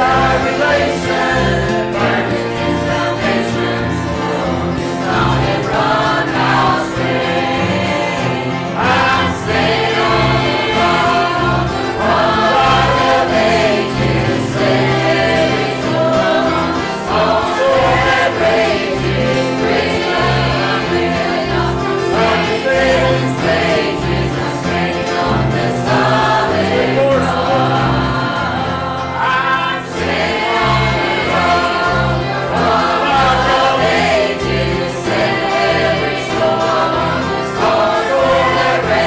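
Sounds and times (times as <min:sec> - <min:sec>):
acoustic guitar: 0:00.0 - 0:39.0
bass guitar: 0:00.0 - 0:39.0
choir singing a hymn: 0:00.0 - 0:39.0
piano: 0:00.0 - 0:39.0.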